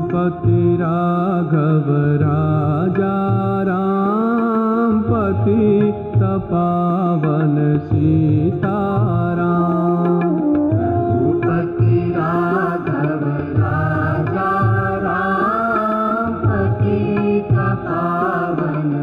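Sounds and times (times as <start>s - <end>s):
devotional song with ornamented melody: 0.0s - 19.0s.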